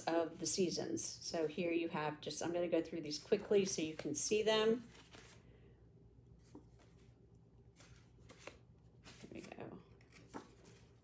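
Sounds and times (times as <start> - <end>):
paper sheets rustling: 3.3 - 5.5, 6.4 - 7.1, 7.7 - 11.0.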